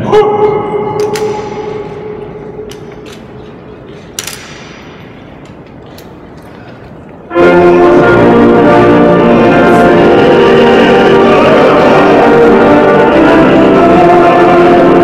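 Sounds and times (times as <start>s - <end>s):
loud music: 0.0s - 2.9s, 7.3s - 15.0s
held chord ringing in hall: 0.0s - 15.0s.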